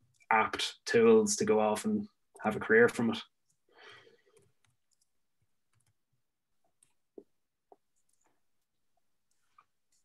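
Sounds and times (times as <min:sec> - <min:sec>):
man speaking: 0:00.2 - 0:03.3
soft breath out: 0:03.7 - 0:04.6.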